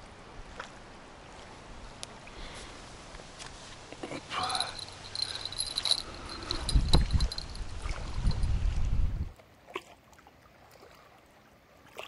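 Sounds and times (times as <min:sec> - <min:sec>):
small metal bell tinkling: 0:04.4 - 0:08.6.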